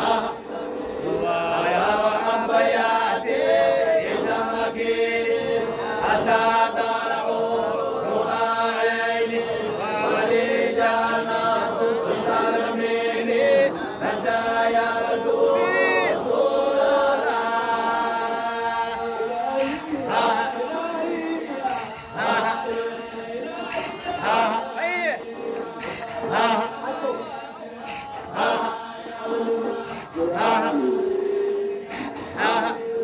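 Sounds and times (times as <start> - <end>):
men chanting in unison: 0.0 - 33.0.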